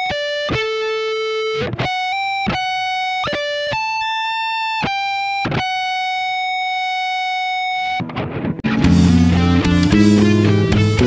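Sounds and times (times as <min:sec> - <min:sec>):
electric guitar sustaining high note: 0:06.9 - 0:11.0.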